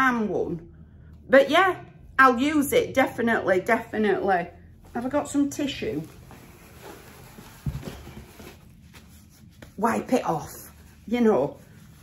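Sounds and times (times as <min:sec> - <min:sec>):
faint rustling: 0:04.8 - 0:12.0.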